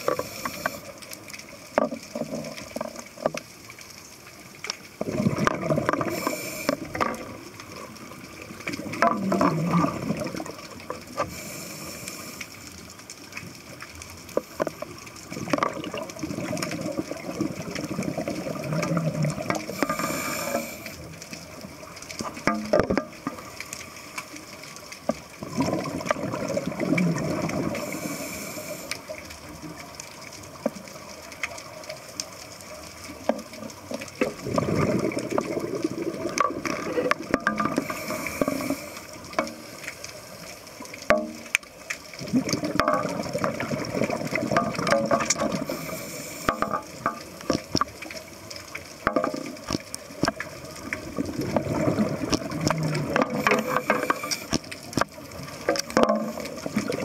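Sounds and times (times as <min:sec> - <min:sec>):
exhaled air bubbling underwater: 0:00.0 - 0:57.0
regulator inhalation hiss: 0:06.1 - 0:07.0, 0:11.3 - 0:12.6, 0:19.7 - 0:21.1, 0:27.8 - 0:29.1, 0:37.8 - 0:39.8, 0:45.6 - 0:46.6, 0:53.4 - 0:54.5.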